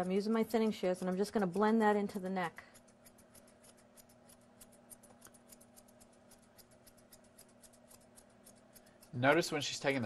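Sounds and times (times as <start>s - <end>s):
thinning shears snipping fur: 0.0s - 10.0s.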